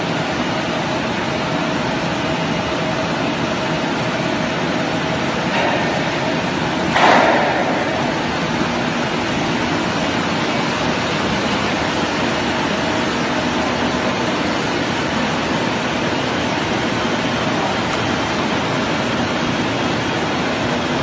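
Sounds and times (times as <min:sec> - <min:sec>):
mechanical and water noise: 0:00.0 - 0:21.0.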